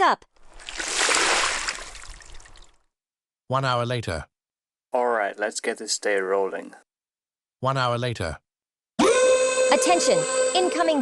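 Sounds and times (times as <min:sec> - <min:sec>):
water splash: 0:00.4 - 0:02.9.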